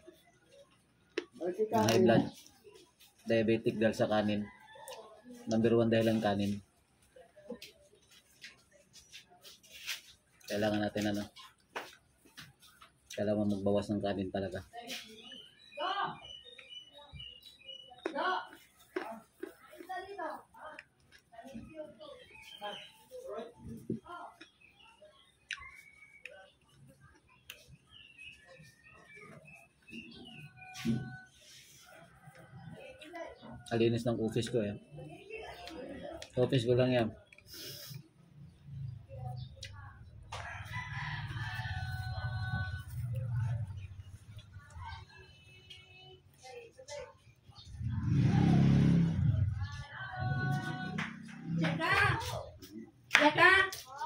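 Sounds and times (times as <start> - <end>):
faint high-pitched chirps: 21.4 - 33.6
rooster crowing: 40.3 - 43.0.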